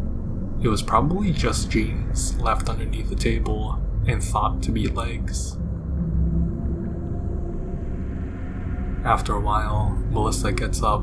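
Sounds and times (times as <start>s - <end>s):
dark ambient music drone: 0.0s - 11.0s.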